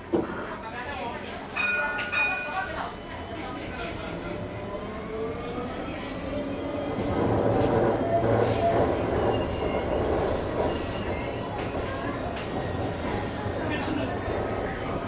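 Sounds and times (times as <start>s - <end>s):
tram running on tracks: 1.1s - 15.0s.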